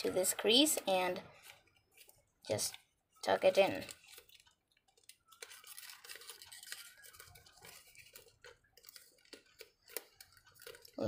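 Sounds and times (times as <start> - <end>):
paper crinkling and rustling: 1.3 - 11.0.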